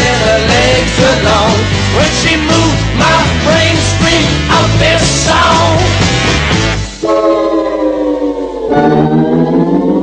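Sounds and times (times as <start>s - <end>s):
rock music chords sliding down: 0.0s - 7.0s.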